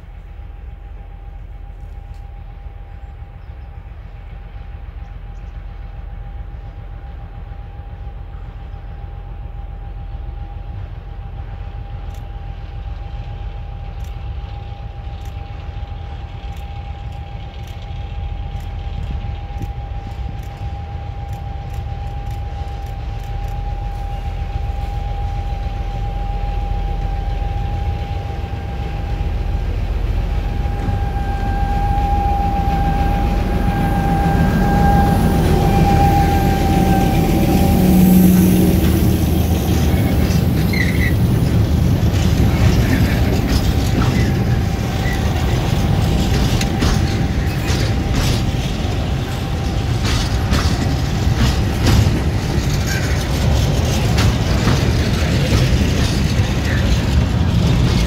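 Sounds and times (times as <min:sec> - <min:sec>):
diesel locomotive engine rumble: 0:00.0 - 0:58.0
steady high whine: 0:00.0 - 0:58.0.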